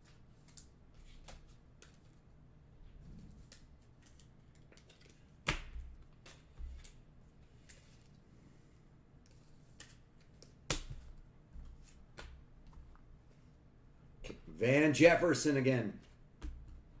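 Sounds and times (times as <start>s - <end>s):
trading cards snapping: 9.7s - 11.2s.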